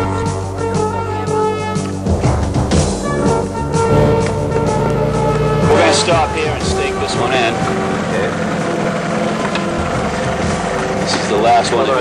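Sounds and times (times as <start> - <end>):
airboat engine and propeller: 0.1 - 12.0.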